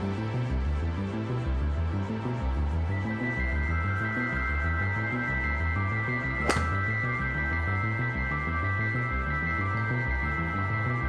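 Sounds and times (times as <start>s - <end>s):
background music: 0.0s - 11.0s
golf ball struck by driver: 6.4s - 6.9s.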